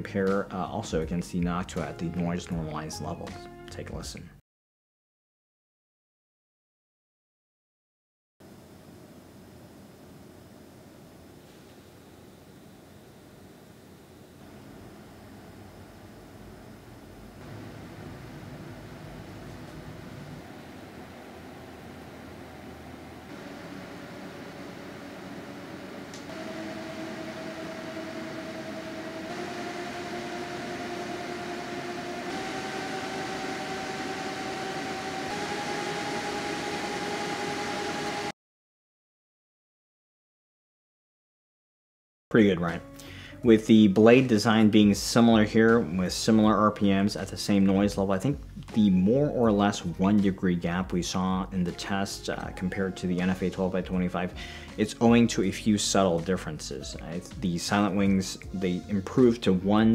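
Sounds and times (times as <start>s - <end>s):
faint rising hum: 8.4s - 38.3s
computer fans rushing air: 8.5s - 38.3s.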